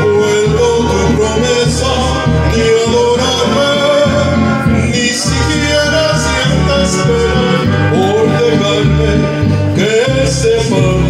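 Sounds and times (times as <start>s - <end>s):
backing track with bass and guitar: 0.0s - 11.0s
man singing karaoke: 0.0s - 11.0s.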